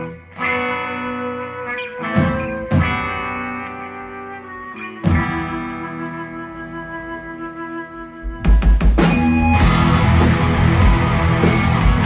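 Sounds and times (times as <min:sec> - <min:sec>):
electric guitar: 0:00.0 - 0:12.0
metal band playing: 0:00.0 - 0:12.0.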